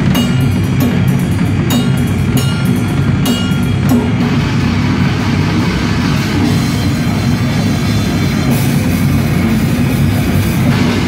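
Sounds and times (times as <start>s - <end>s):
cymbal crashes: 0.0s - 11.0s
death-grind band playing live: 0.0s - 11.0s
drum kit: 0.0s - 11.0s.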